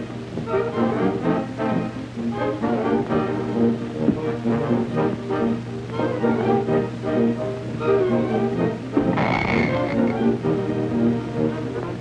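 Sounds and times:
silent film music: 0.0s - 12.0s
rasping croaking burst: 9.0s - 10.4s.

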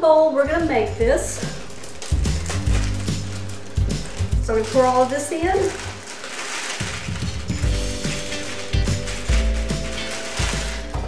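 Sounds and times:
soft background music: 0.0s - 11.0s
plastic bag crinkling: 1.2s - 11.0s
dry mix pouring into glass bowl: 1.6s - 11.0s.

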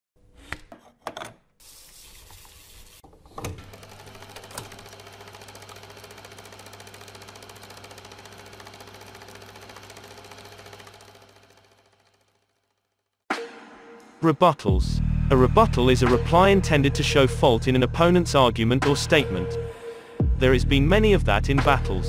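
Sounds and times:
film projector clattering: 3.4s - 12.9s.

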